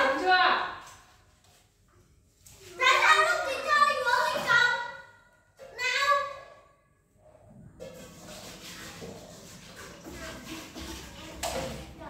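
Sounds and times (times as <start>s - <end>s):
dishwashing at kitchen sink: 0.0s - 12.0s.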